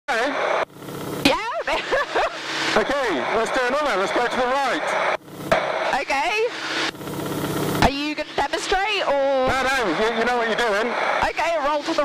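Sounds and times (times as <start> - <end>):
radial engine droning: 0.1 - 12.0
talk over aircraft intercom: 1.2 - 5.2, 5.8 - 6.6, 7.8 - 12.0
airflow: 2.0 - 7.8.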